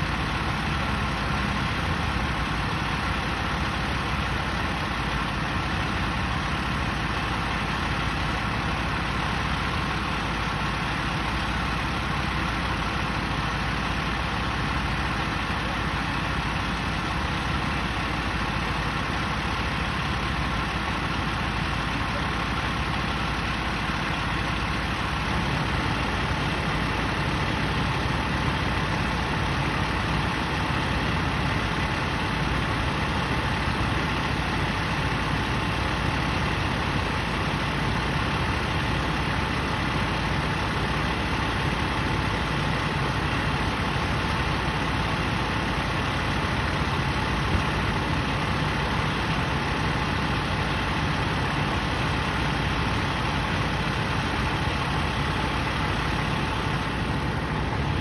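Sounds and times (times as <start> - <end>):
diesel engine idling: 0.0 - 58.0.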